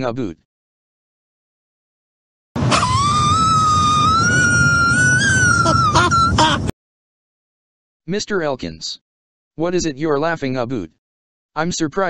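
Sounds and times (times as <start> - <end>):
long high-pitched laugh: 2.7 - 6.7.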